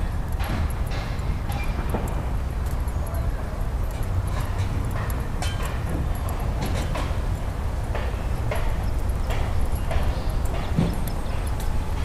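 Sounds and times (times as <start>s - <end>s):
footsteps on pavement: 0.2s - 12.0s.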